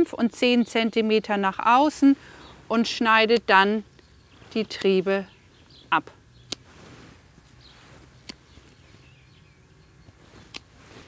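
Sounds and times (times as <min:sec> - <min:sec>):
pruning shears snipping: 0:02.8 - 0:05.2, 0:05.9 - 0:08.9, 0:10.1 - 0:11.0.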